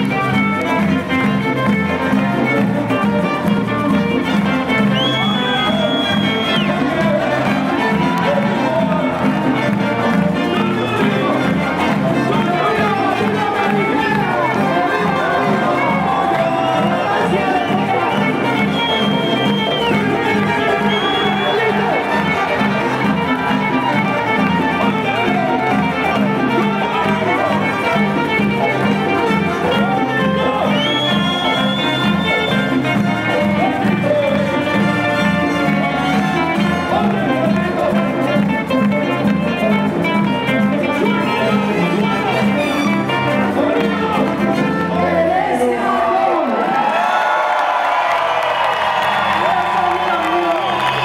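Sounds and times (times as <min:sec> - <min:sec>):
saxophone: 0:00.0 - 0:46.0
person singing: 0:05.0 - 0:46.6.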